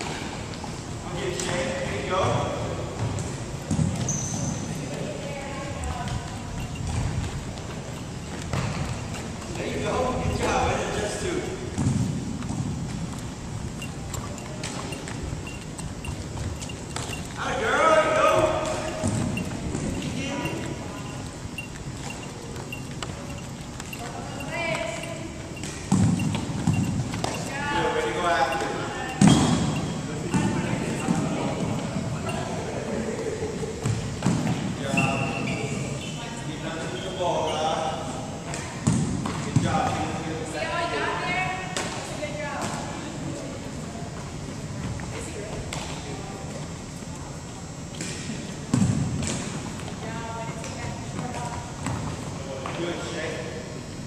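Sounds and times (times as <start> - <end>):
voices echoing in a hall: 0.0 - 12.5, 13.4 - 54.0
thrown ball thuds: 18.3 - 20.0.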